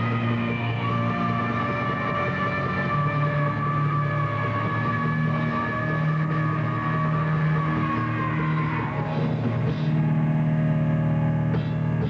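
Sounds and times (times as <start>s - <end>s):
distorted electric guitar chords: 0.0s - 12.0s.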